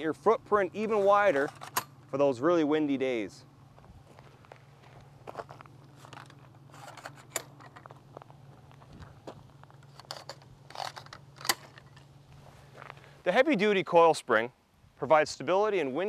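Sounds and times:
faint low hum: 0:00.0 - 0:16.0
footsteps on gravel: 0:03.7 - 0:10.6, 0:11.6 - 0:13.3.

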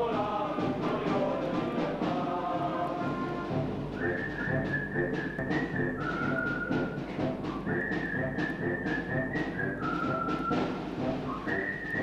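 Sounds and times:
military wind band playing: 0:00.0 - 0:12.0.

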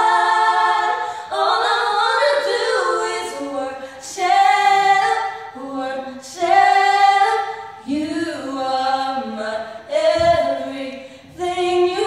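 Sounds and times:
women singing a cappella: 0:00.0 - 0:12.0
singers breathing: 0:01.0 - 0:01.3, 0:03.8 - 0:04.1, 0:11.0 - 0:11.4.

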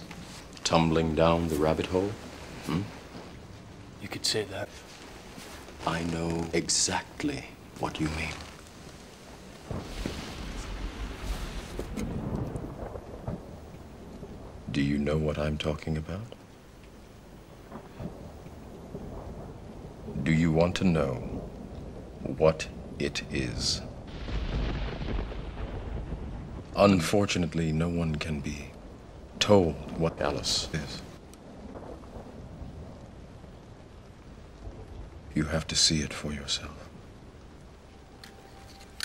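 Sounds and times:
distant thunder rumbling: 0:00.0 - 0:39.0
steady rain: 0:00.0 - 0:39.0.

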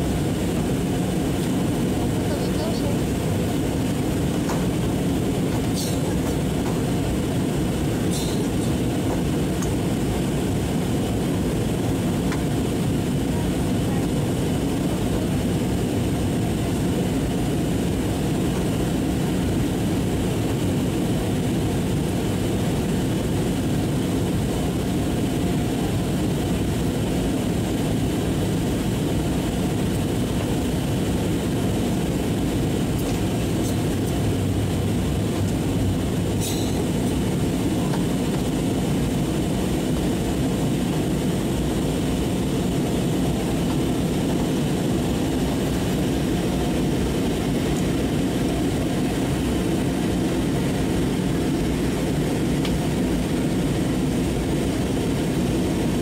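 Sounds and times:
airliner cabin roar: 0:00.0 - 0:56.0.

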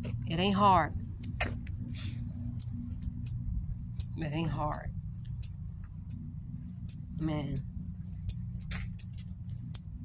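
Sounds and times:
metallic clicks and jingles: 0:00.0 - 0:10.0.

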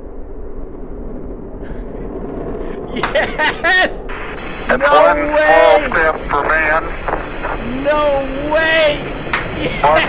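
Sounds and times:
rocket engine rumble: 0:00.0 - 0:10.0
man shouting excitedly: 0:03.4 - 0:04.1, 0:04.7 - 0:05.9, 0:07.7 - 0:09.0.

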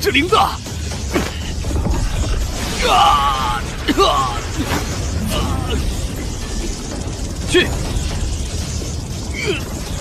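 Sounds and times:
low rumble with crackle: 0:00.8 - 0:10.0.

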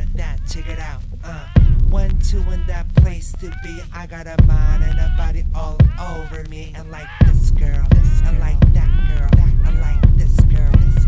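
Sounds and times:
hip-hop beat with deep kicks: 0:00.0 - 0:11.0.

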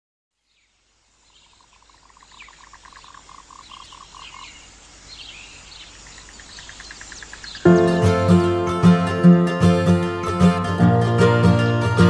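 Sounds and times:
frog-like croaking: 0:01.4 - 0:07.7.

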